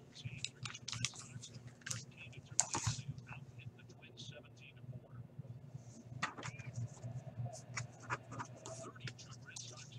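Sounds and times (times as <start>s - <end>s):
faint low hum: 0.0s - 9.9s
typing on computer keyboard: 0.4s - 1.2s, 1.8s - 3.0s.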